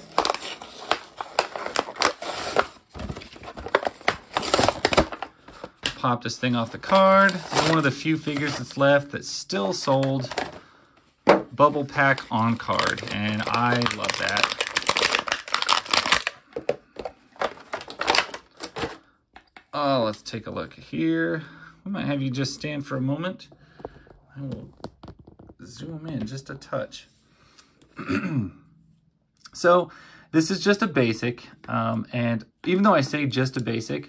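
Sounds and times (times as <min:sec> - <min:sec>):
plastic blister crinkling and tearing: 0:00.0 - 0:06.0, 0:06.6 - 0:08.8, 0:11.6 - 0:16.7, 0:17.4 - 0:19.0
plastic blister crackling: 0:11.8 - 0:16.8.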